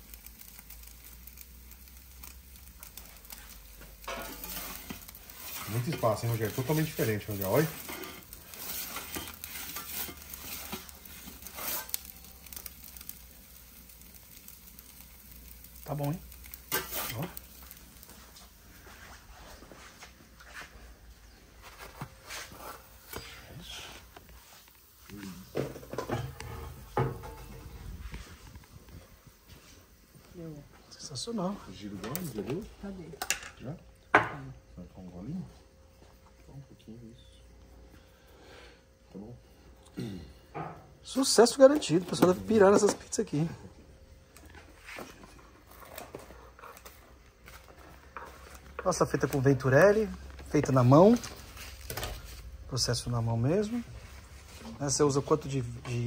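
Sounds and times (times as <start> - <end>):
faint steady hiss: 0.0 - 56.0.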